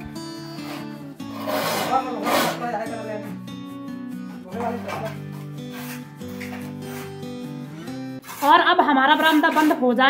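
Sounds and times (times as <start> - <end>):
soft background music: 0.0 - 10.0
trowel scraping mortar in a pan: 0.6 - 2.9, 4.6 - 10.0.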